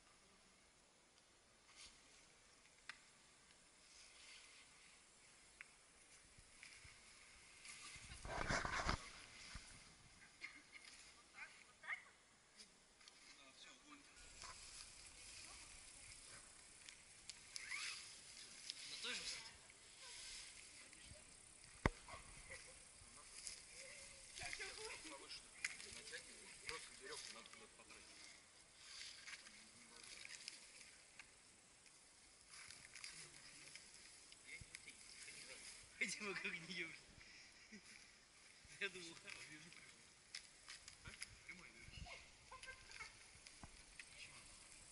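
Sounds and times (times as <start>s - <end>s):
rustling: 1.6s - 44.9s.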